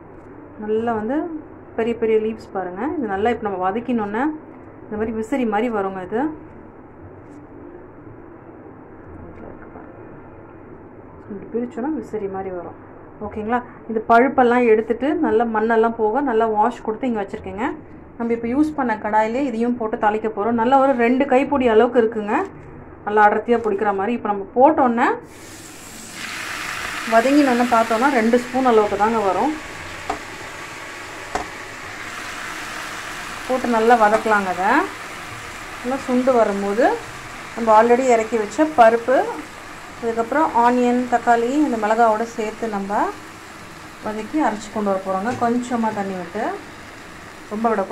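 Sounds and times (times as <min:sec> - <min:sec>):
low background hum: 0:00.0 - 0:47.9
oil sizzling in a frying pan: 0:25.3 - 0:47.9.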